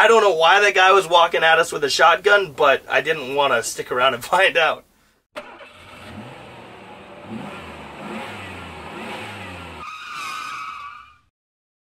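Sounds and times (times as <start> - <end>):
vehicle engine revving: 5.4 - 9.8.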